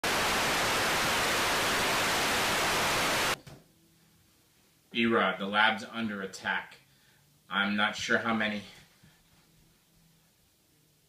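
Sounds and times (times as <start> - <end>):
tv static hiss: 0.0 - 3.4.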